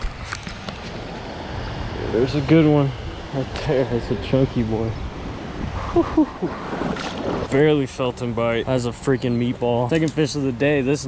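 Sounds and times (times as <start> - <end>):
wind buffeting microphone: 0.0 - 11.0
water splashing: 6.4 - 7.6.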